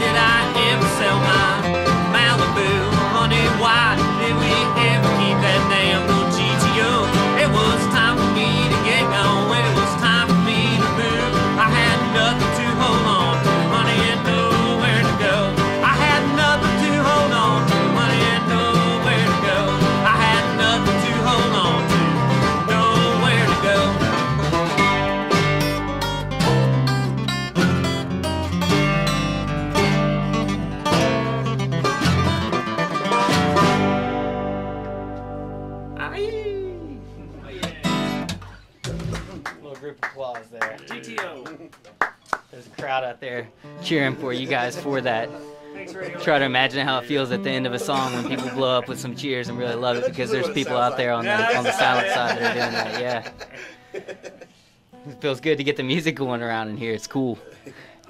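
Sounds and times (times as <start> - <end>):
bluegrass band playing: 0.0 - 39.4, 43.6 - 57.9.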